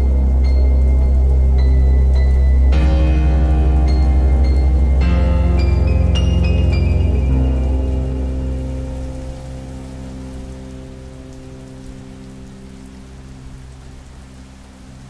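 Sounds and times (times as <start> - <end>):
low musical drone: 0.0 - 15.0
rain falling: 0.0 - 15.0.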